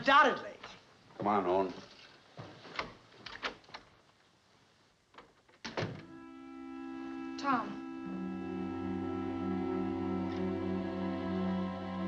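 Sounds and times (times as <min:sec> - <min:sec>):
door shutting: 0:05.6 - 0:06.1
film music with held chords: 0:06.1 - 0:12.0.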